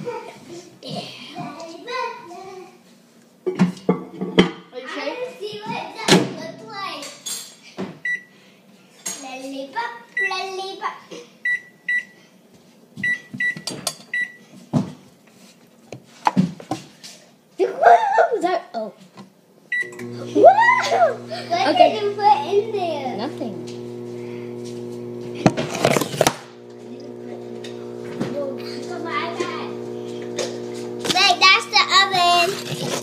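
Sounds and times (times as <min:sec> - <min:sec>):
children talking: 0:00.0 - 0:02.8, 0:04.7 - 0:07.2, 0:20.0 - 0:24.2, 0:26.6 - 0:33.0
microwave oven beep: 0:08.0 - 0:08.3, 0:11.5 - 0:12.2, 0:13.0 - 0:14.4, 0:19.7 - 0:21.3
microwave oven running hum: 0:19.8 - 0:33.0
child shouting: 0:20.3 - 0:23.0, 0:28.4 - 0:29.8.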